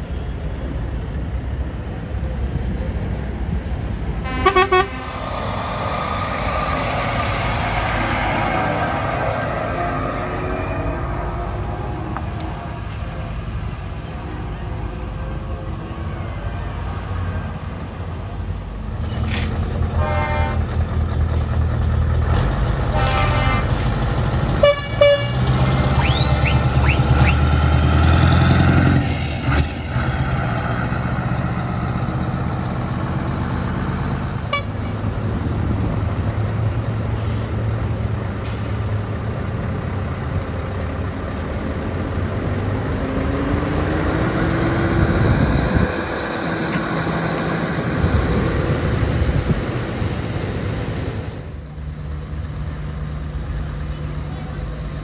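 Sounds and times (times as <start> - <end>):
diesel truck engines driving past: 0.0 - 55.0
truck horn toots: 4.2 - 5.2, 19.9 - 20.7, 22.9 - 23.9, 24.6 - 27.4, 34.5 - 34.9.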